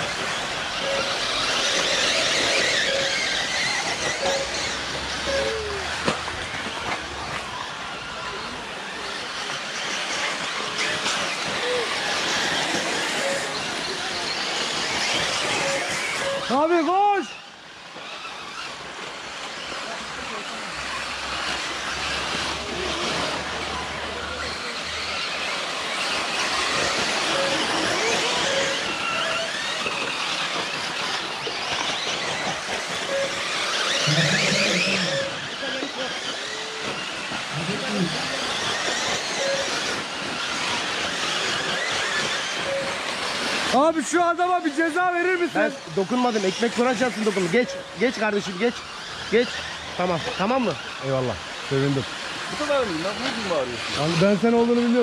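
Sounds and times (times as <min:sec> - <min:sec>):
electric motors whining: 0:00.0 - 0:55.0.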